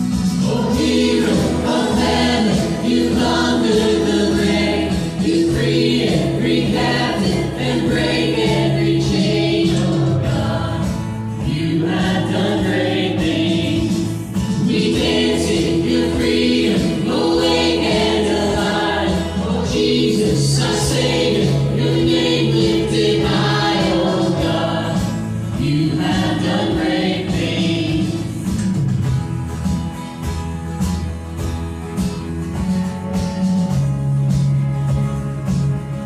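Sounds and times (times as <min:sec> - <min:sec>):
voices singing together: 0:00.0 - 0:28.8
acoustic guitar: 0:00.0 - 0:36.0
electric bass: 0:00.0 - 0:36.0.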